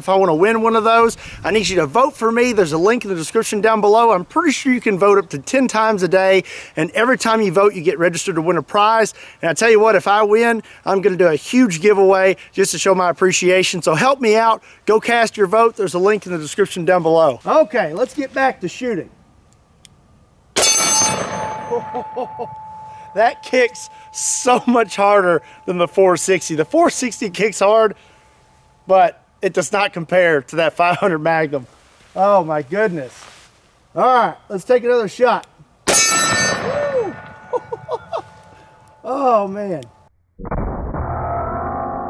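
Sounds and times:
steel target ringing: 20.6s - 28.9s, 35.9s - 40.0s
man chuckling: 21.7s - 22.6s, 36.8s - 38.4s.

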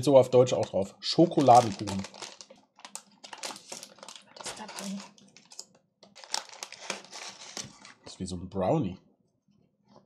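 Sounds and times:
plastic wrapper crinkling: 0.5s - 8.1s.

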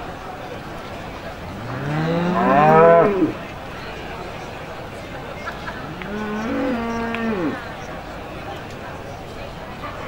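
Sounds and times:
cow mooing: 1.5s - 3.4s, 6.1s - 7.6s.

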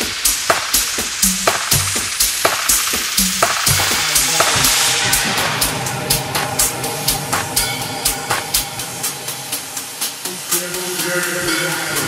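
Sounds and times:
kick drum: 0.0s - 8.7s
hissing crackly noise: 0.0s - 12.0s
short bass notes: 3.7s - 7.6s
sustained synth chord: 4.4s - 10.4s.

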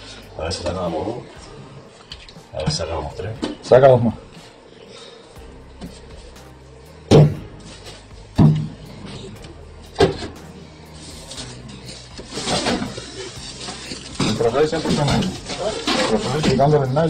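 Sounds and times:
plastic-wrapped bale rustling: 10.9s - 17.0s.

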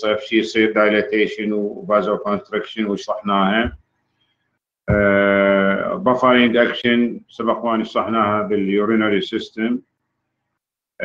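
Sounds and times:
man holding hesitation vowel: 4.9s - 6.0s.

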